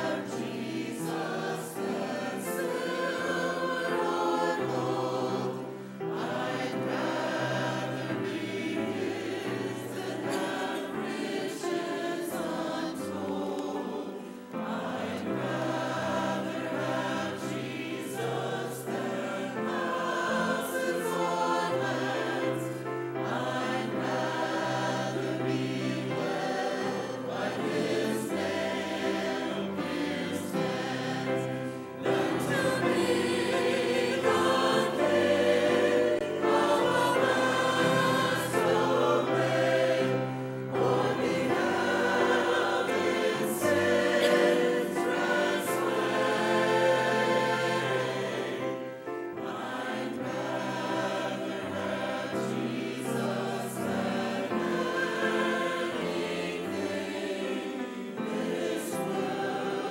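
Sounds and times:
church choir singing: 0.0 - 59.9.

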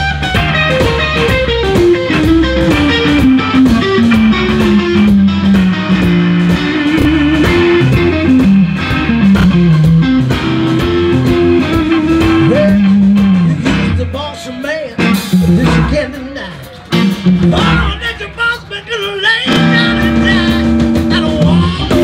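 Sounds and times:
drums with cymbal hits: 0.0 - 22.0
electric guitar lead with bent notes: 0.0 - 22.0.

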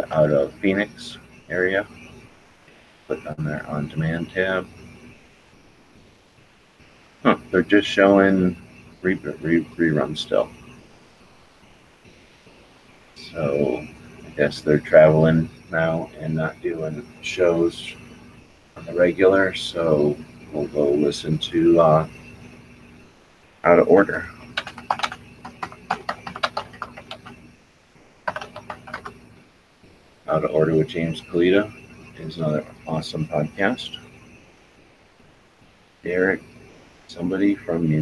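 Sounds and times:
background hiss: 0.0 - 38.0
typing on computer keyboard: 24.5 - 27.4, 28.2 - 29.2.

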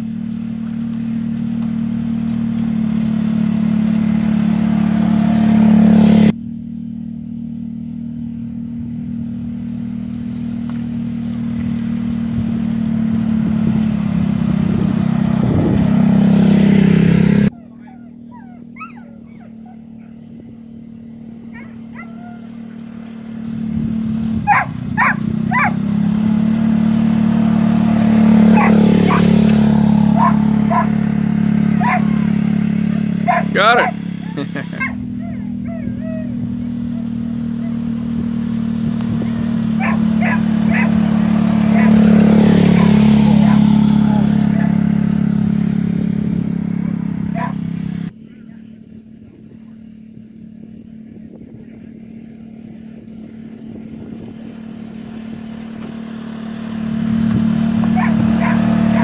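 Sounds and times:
utility vehicle engine running: 0.0 - 59.0
dog barking: 21.5 - 22.5, 24.5 - 25.8, 28.5 - 29.4, 30.1 - 31.0, 31.7 - 32.4, 33.2 - 37.8, 39.8 - 41.0, 41.7 - 42.0, 42.7 - 44.8, 46.8 - 47.6, 57.9 - 59.0.

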